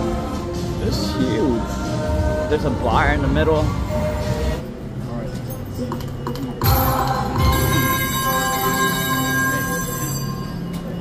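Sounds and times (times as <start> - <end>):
background music: 0.0 - 11.0
slot machine jingles: 6.6 - 11.0.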